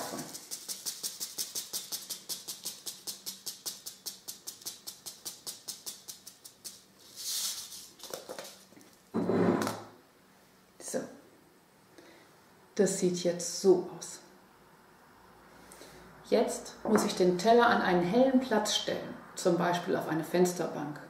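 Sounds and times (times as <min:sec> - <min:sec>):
seeds ticking from shaken packet: 0:00.0 - 0:08.8
paper packet rustling: 0:05.8 - 0:09.0.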